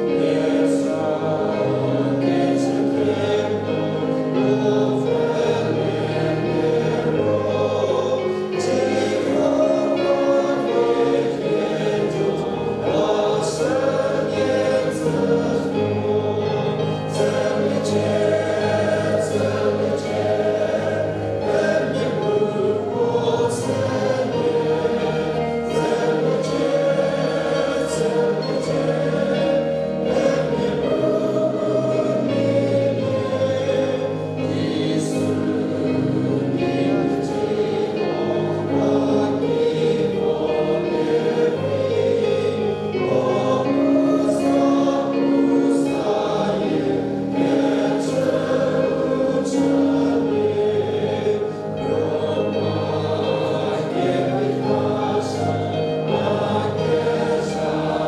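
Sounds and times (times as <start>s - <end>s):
group singing a hymn: 0.0s - 58.0s.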